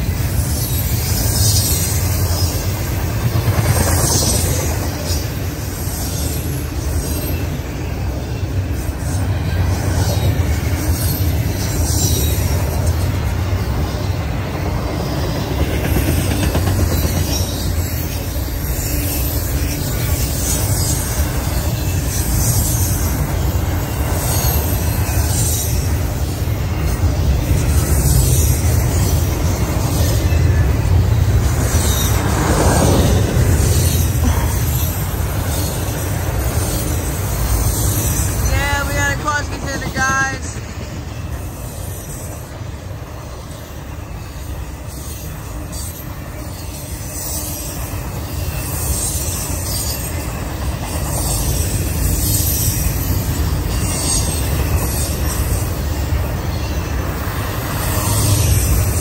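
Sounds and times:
freight train rumbling past: 0:00.0 - 0:59.0
train wheels clattering: 0:00.0 - 0:59.0.

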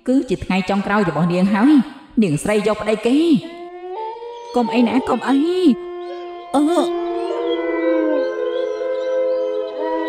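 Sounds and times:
background music: 0:00.0 - 0:10.0
long howl sinking in pitch: 0:03.6 - 0:10.0.

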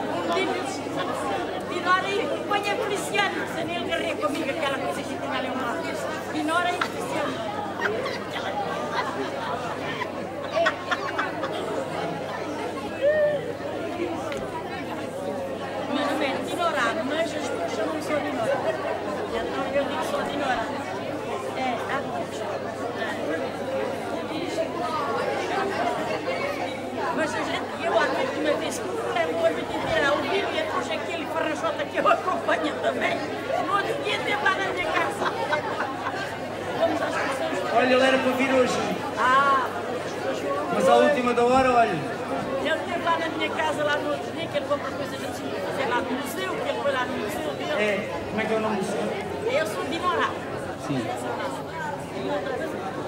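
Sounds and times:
babble of overlapping conversation: 0:00.0 - 0:53.0.

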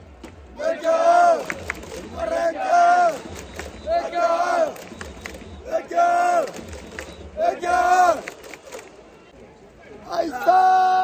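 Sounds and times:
crowd chanting in unison: 0:00.4 - 0:08.3.

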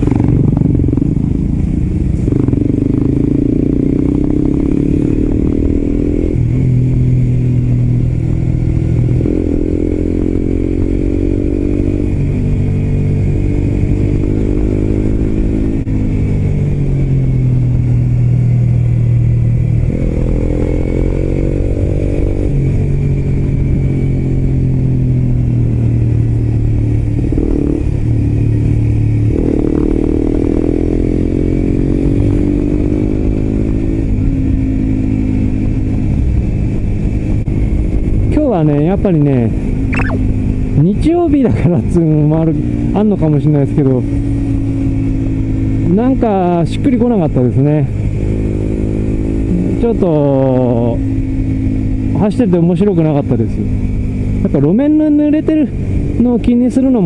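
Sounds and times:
motorcycle engine revving: 0:00.0 - 0:38.2, 0:47.6 - 0:52.2.

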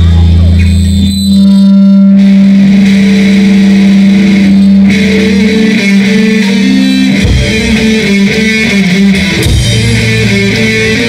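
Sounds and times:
live band with electric guitar: 0:00.0 - 0:11.0.

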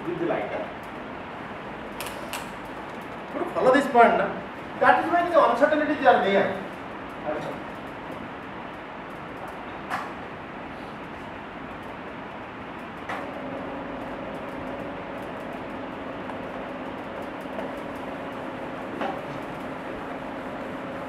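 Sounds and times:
room noise: 0:00.0 - 0:21.0.

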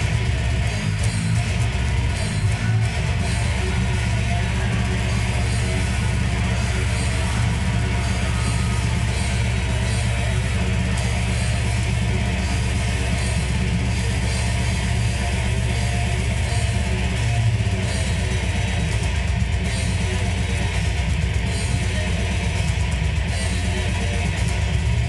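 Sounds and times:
distorted electric guitar riff: 0:00.0 - 0:25.0.

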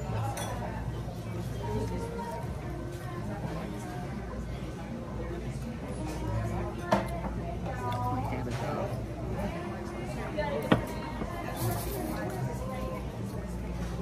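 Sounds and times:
cutlery and dishes clinking: 0:00.0 - 0:00.7, 0:10.6 - 0:12.5
faint music: 0:00.0 - 0:14.0.

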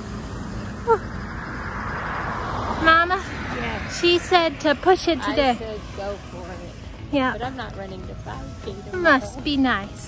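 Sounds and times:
car driving past: 0:00.0 - 0:07.1.

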